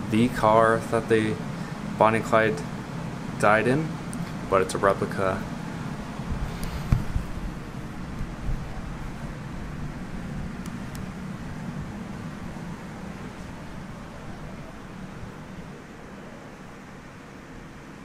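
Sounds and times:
room hum and hiss: 0:00.0 - 0:18.0.

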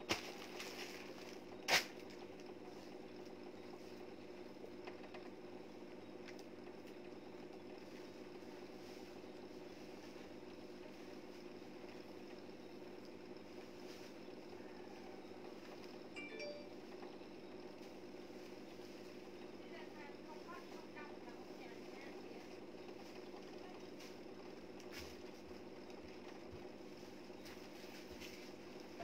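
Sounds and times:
faint mechanical hum: 0:00.0 - 0:29.0.

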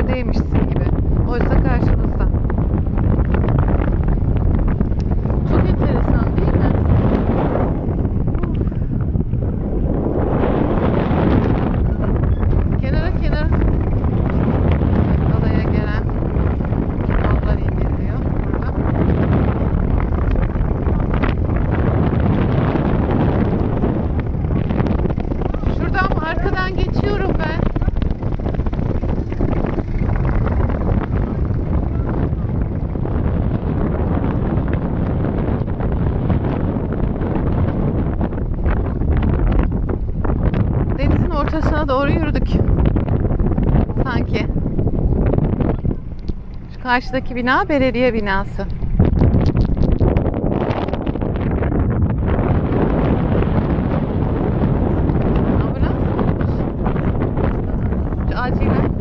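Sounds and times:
strong wind buffeting microphone: 0:00.0 - 0:59.0.

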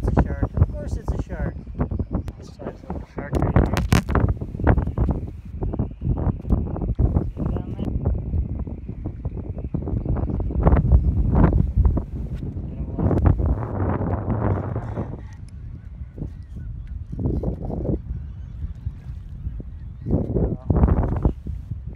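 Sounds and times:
wind buffeting microphone: 0:00.0 - 0:21.9
camera handling knocks and rubs: 0:03.4 - 0:05.2.

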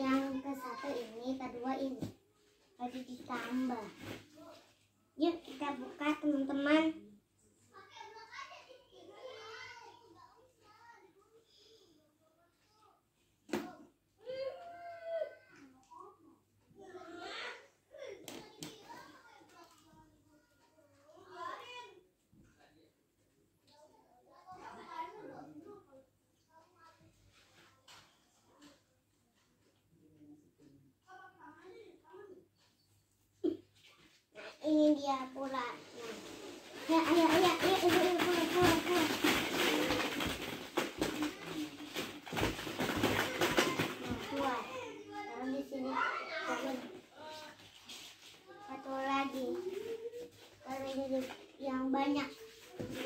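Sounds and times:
faint child's voice talking: 0:00.0 - 0:02.1, 0:02.8 - 0:13.0, 0:13.6 - 0:22.1, 0:23.7 - 0:27.8, 0:30.7 - 0:32.5, 0:43.3 - 0:47.6, 0:48.4 - 0:53.0
plastic balls clattering: 0:35.4 - 0:44.8.

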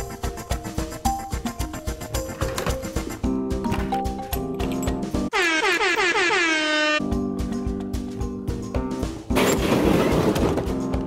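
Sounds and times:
air horn honks: 0:05.3 - 0:07.1.

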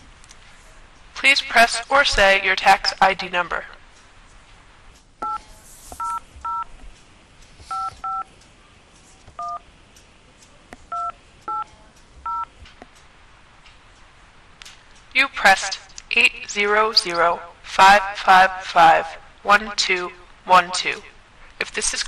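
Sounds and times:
telephone keypad beeps: 0:06.0 - 0:06.6, 0:07.7 - 0:08.3, 0:09.4 - 0:09.6, 0:10.9 - 0:11.6, 0:12.3 - 0:12.5.

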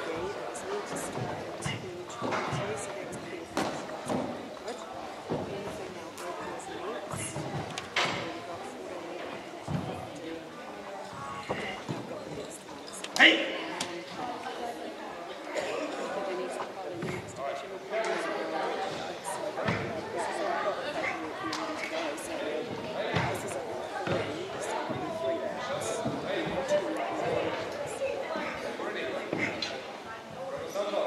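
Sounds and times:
indistinct chatter echoing: 0:00.0 - 0:31.0
voices of people: 0:00.0 - 0:31.0.

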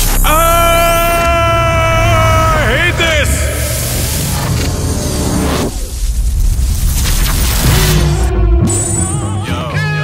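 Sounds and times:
man screaming: 0:00.2 - 0:03.8.

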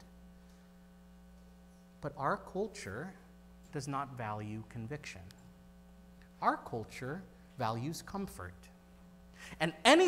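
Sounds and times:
faint mains hum: 0:00.0 - 0:10.0.

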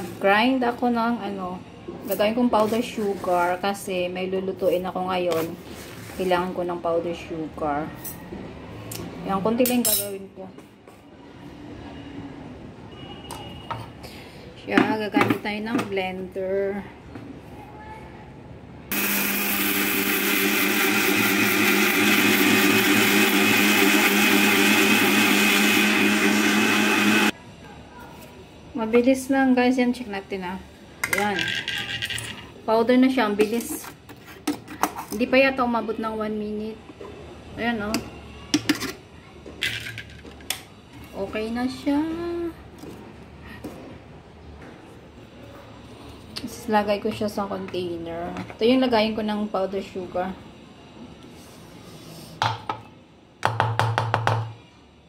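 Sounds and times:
woman speaking: 0:14.6 - 0:17.0, 0:28.8 - 0:31.9, 0:32.7 - 0:33.9, 0:41.2 - 0:42.6
mixer grinder motor whining: 0:18.9 - 0:27.4.

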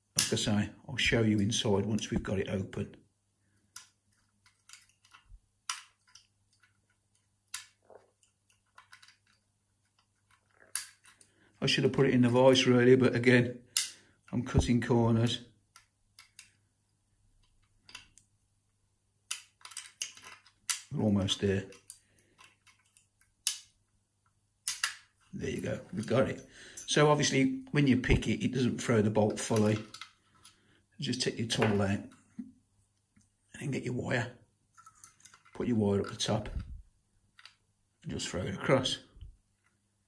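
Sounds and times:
lock pick scraping and clicking: 0:03.6 - 0:11.4, 0:15.7 - 0:16.6, 0:19.3 - 0:20.9, 0:21.7 - 0:23.7, 0:24.6 - 0:25.0.

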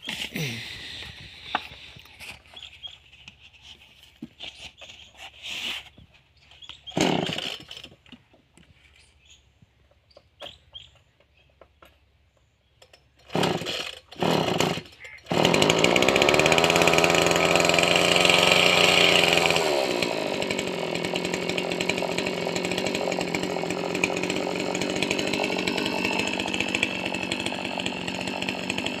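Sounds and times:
pull-start sputtering: 0:13.2 - 0:29.0
two-stroke engine running: 0:13.4 - 0:29.0.

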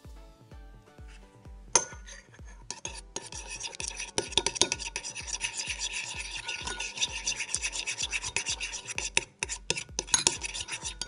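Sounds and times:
metal spoon scraping ceramic bowl: 0:01.8 - 0:11.0.

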